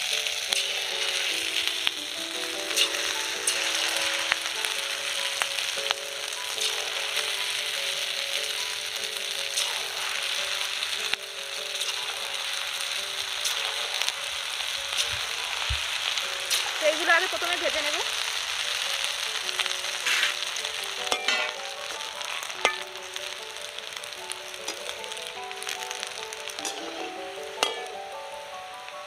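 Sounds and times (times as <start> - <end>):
batter sizzling in hot oil: 0.0 - 29.0.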